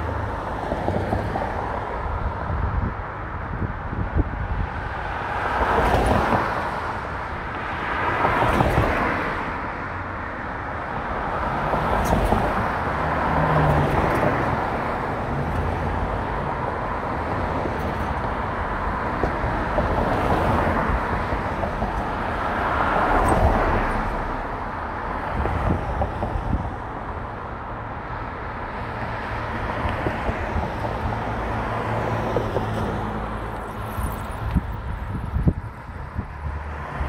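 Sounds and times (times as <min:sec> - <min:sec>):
city traffic noise: 0:00.0 - 0:37.0.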